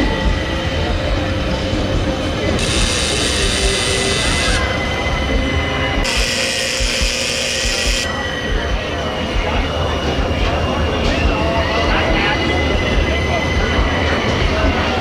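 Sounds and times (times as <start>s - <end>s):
crowd chatter: 0.0s - 15.0s
mechanical hum: 1.6s - 10.0s.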